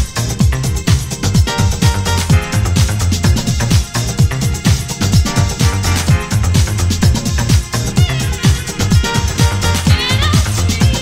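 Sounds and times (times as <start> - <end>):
kick drum beat: 0.0 - 11.0
sustained bass line: 0.0 - 11.0.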